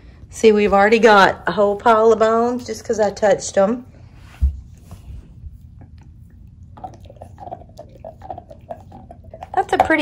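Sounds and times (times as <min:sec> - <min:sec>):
dog gnawing on a bone: 0:05.4 - 0:10.0.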